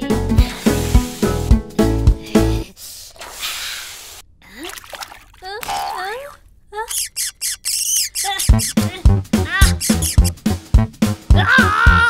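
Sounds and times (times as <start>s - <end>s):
cartoon voice gliding squeal: 6.8s - 8.8s, 9.5s - 10.3s
short squawking chirps: 6.8s - 8.9s, 9.6s - 10.4s.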